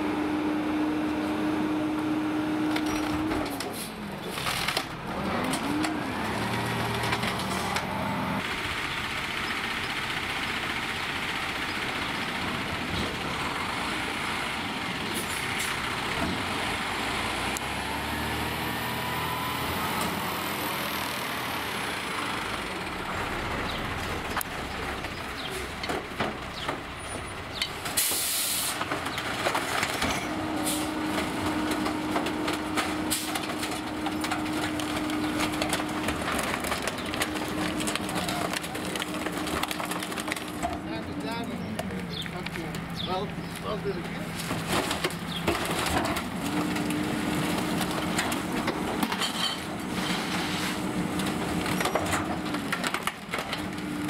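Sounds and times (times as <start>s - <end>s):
garbage truck engine running: 0.0s - 54.0s
packer hydraulics working: 27.9s - 40.8s.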